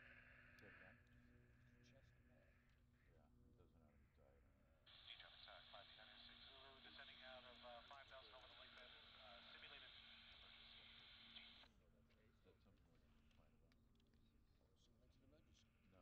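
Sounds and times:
steady low hum: 0.0s - 16.0s
faint voice over radio: 1.8s - 13.5s.

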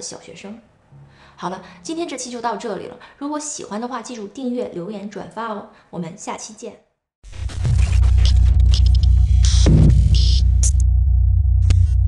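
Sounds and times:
crackling digital static: 7.2s - 10.8s
deep bass drone: 7.3s - 12.0s.

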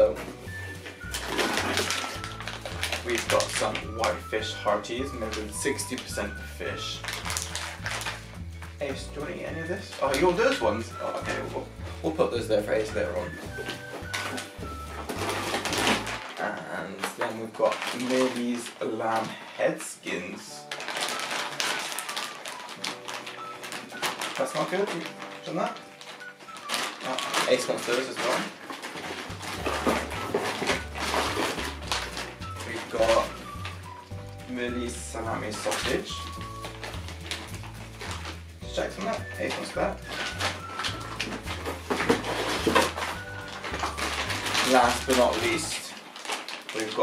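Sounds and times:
plastic bag crinkling: 0.0s - 47.0s.

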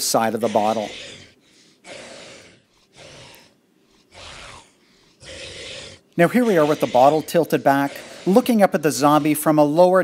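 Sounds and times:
raspy zombie breaths: 0.7s - 9.5s.

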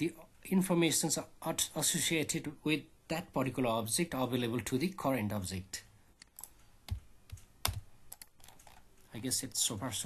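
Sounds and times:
keyboard and mouse clicks: 6.2s - 9.0s.

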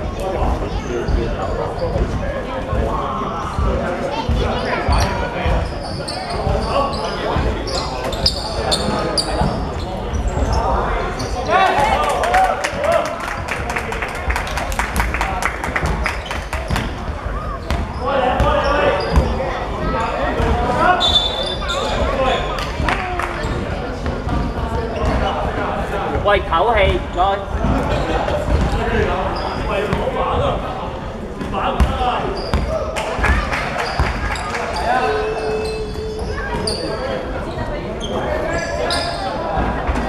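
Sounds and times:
players' voices and shouts: 0.0s - 13.6s, 16.6s - 40.0s.

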